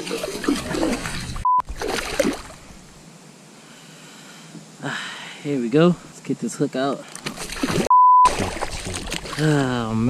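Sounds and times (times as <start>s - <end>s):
water sloshing: 0.0s - 2.8s, 7.1s - 10.0s
censor bleep: 1.4s - 1.7s, 7.9s - 8.3s.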